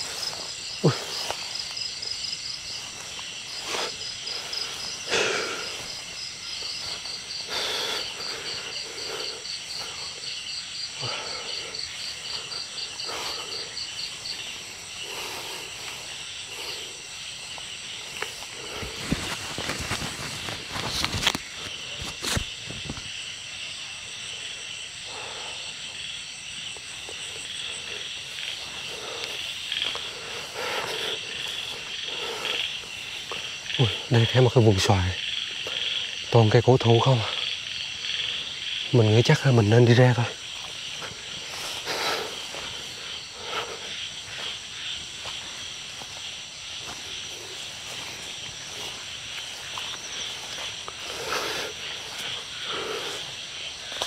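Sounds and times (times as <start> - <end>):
footsteps through tall grass: 0.0 - 23.3, 25.6 - 36.2, 37.3 - 54.0
crickets trilling: 0.0 - 54.0
fast pulsed insect chirp: 0.0 - 54.0.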